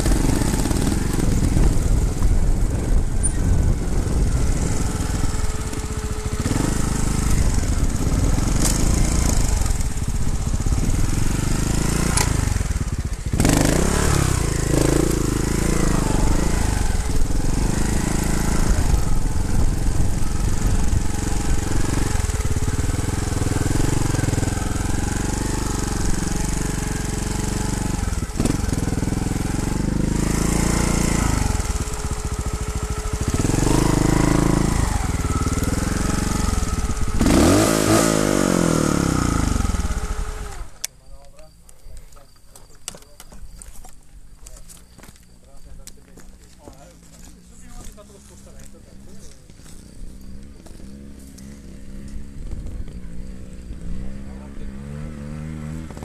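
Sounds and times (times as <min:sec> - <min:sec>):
wind noise on microphone: 0:00.0 - 0:40.7, 0:52.2 - 0:54.2
motorcycle engine revving: 0:00.0 - 0:40.9, 0:43.8 - 0:56.0.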